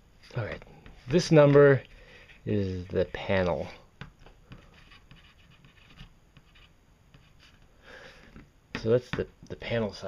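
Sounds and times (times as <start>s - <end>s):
pencil scratching on cardboard: 4.5s - 7.6s.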